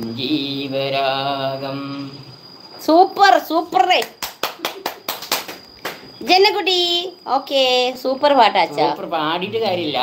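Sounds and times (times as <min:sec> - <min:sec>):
hands clapping: 0:04.0 - 0:06.1.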